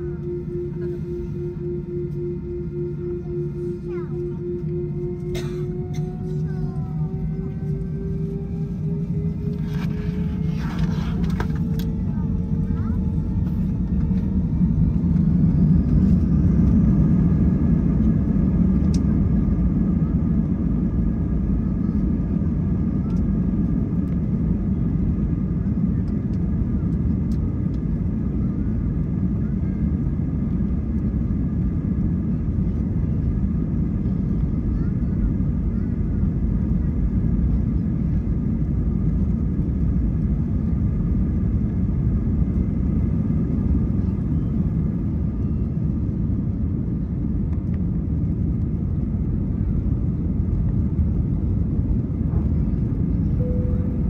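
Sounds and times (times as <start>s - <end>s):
faint engine whine: 0.0s - 54.0s
jet engines rumbling in cabin: 0.0s - 54.0s.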